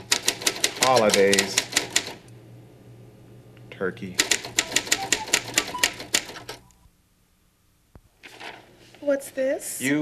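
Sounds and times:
typewriter keys clacking: 0:00.0 - 0:02.2, 0:04.2 - 0:06.6.

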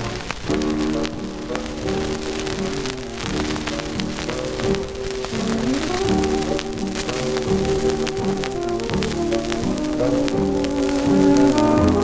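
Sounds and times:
dance orchestra playing chords: 0:00.0 - 0:12.0
record crackle and hiss: 0:00.0 - 0:12.0.

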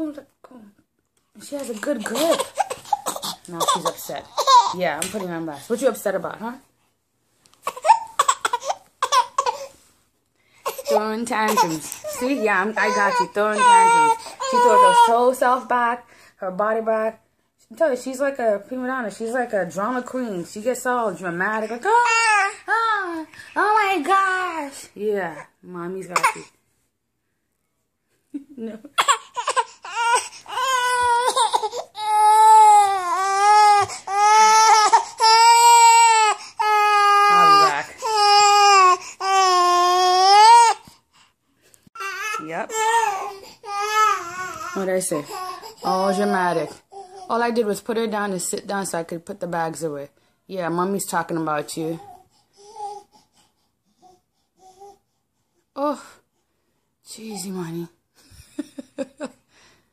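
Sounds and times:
baby squealing: 0:02.1 - 0:04.8, 0:07.6 - 0:09.7, 0:29.0 - 0:40.8.

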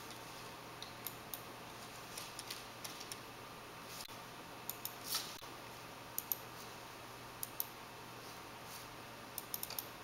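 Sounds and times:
faint room hum: 0:00.0 - 0:10.0
computer mouse clicks: 0:04.7 - 0:05.0, 0:06.2 - 0:06.4, 0:07.4 - 0:07.8, 0:09.4 - 0:09.9.

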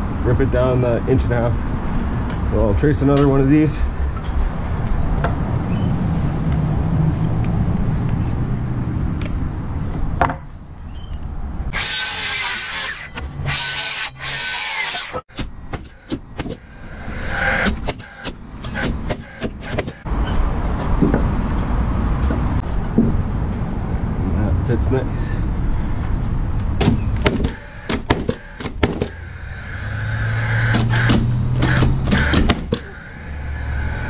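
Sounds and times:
circular saw cutting wood: 0:11.7 - 0:15.2, 0:16.6 - 0:20.1, 0:27.5 - 0:34.0
wooden knocks and clatter: 0:20.6 - 0:21.3, 0:22.2 - 0:23.6.

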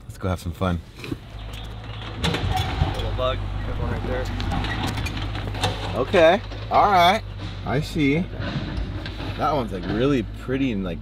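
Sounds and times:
engine rumbling: 0:00.0 - 0:11.0.

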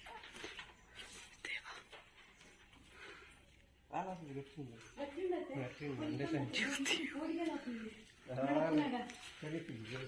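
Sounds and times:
faint whispering voices: 0:00.0 - 0:02.2.

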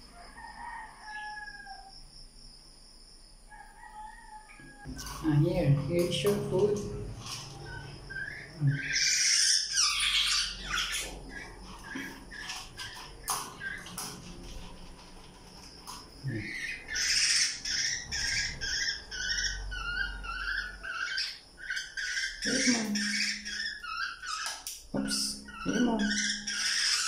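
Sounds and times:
bird chick squawking: 0:16.4 - 0:24.7, 0:25.3 - 0:27.0.

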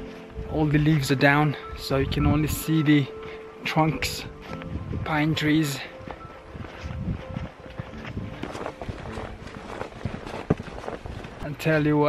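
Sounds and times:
footsteps on dirt trail: 0:00.0 - 0:12.0
rustling leaves: 0:04.2 - 0:12.0.

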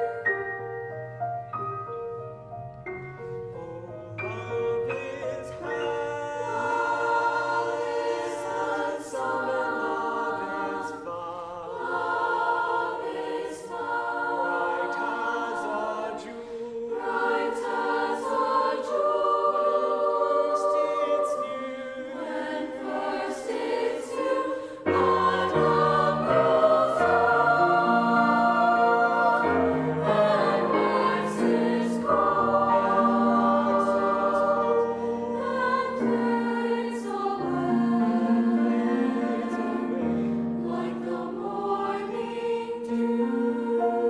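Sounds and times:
mixed-voice choir singing: 0:03.0 - 0:44.0.

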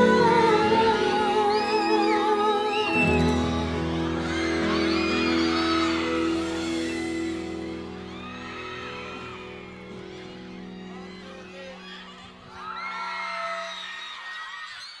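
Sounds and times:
live pop ballad: 0:00.0 - 0:11.8
crowd screaming and cheering: 0:00.0 - 0:15.0.

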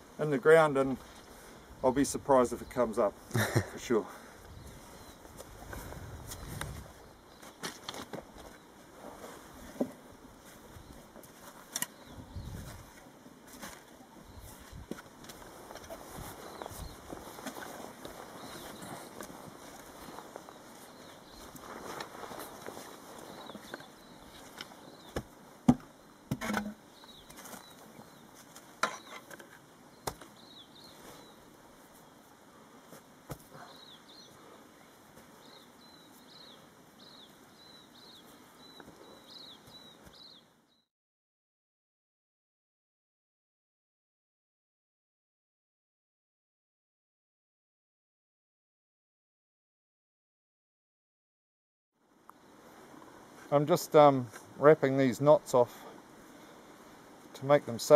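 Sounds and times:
shovel scraping and digging soil: 0:26.3 - 0:27.7, 0:28.4 - 0:30.3.

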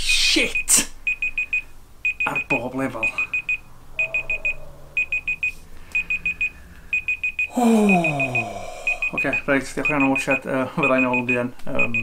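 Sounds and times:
high digital timer beeps: 0:00.5 - 0:12.0.

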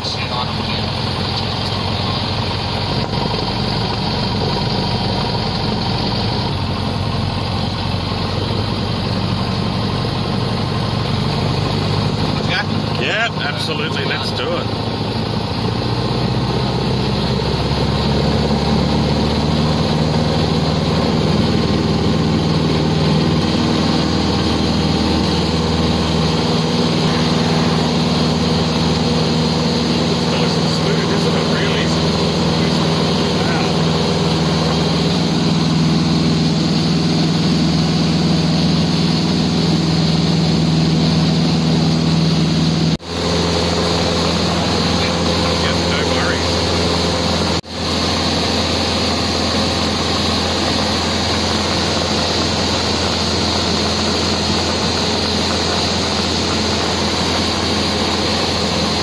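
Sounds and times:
light aircraft engine droning: 0:00.0 - 0:59.0.

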